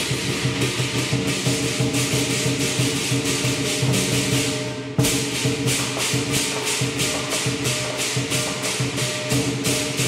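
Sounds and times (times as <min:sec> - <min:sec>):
crashing cymbals: 0:00.0 - 0:10.0
large drum beating: 0:00.0 - 0:10.0
ringing gong: 0:06.2 - 0:10.0.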